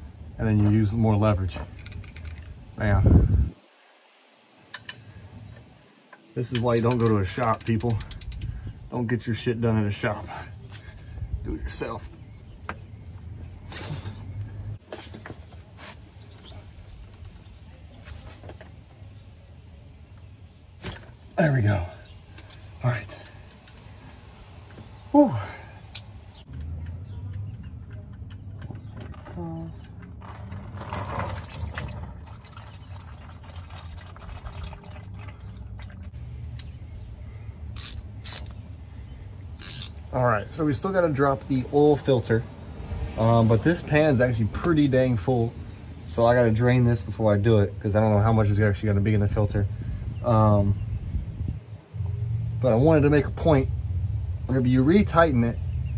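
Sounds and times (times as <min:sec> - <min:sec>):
oil trickling into plastic pan: 0:30.2 - 0:36.1
socket ratchet clicking: 0:37.8 - 0:38.6, 0:39.6 - 0:40.0.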